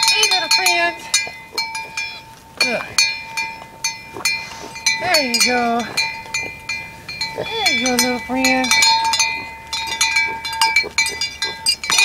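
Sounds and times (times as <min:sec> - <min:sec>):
small bell clinking: 0:00.0 - 0:12.0.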